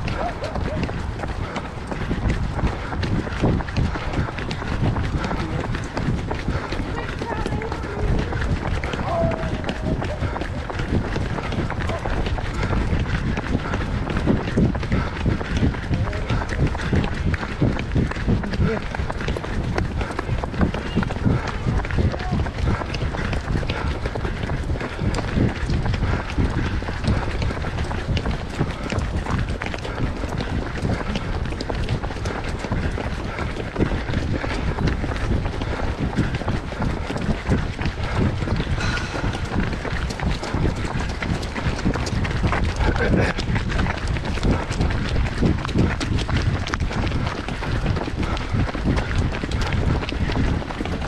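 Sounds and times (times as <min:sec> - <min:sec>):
runners' footsteps on tarmac: 0:00.0 - 0:51.0
indistinct voices: 0:03.3 - 0:17.2, 0:38.6 - 0:41.0.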